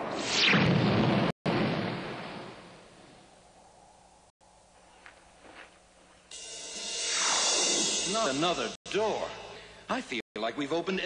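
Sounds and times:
falling zap: 0.0 - 1.9
cartoon explosion blast: 0.0 - 2.7.

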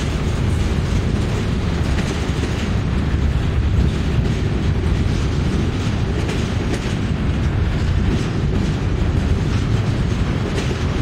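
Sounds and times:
steel wheels rumbling on rail: 0.0 - 11.0
wheels clicking over rail joints: 0.0 - 11.0.

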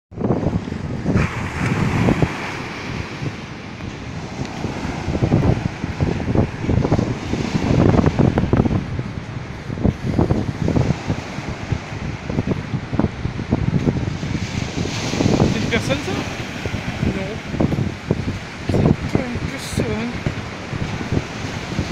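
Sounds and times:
wind buffeting microphone: 0.1 - 21.9
surf breaking on beach: 0.2 - 21.9.

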